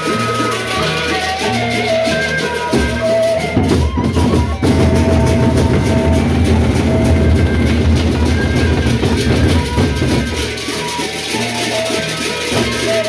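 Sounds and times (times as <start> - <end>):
barrel drums beaten rapidly: 0.0 - 13.0.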